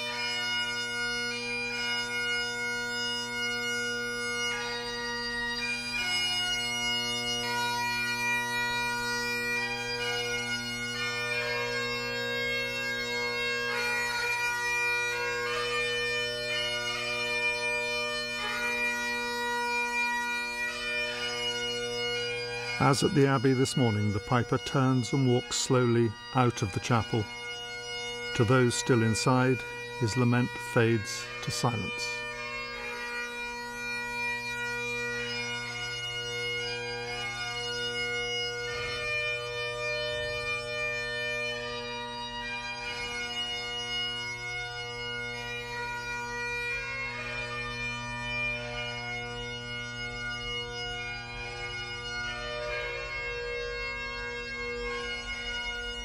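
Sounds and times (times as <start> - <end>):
bagpipe playing a slow lament: 0.0 - 56.0
narrator speaking: 22.8 - 27.3, 28.4 - 32.2.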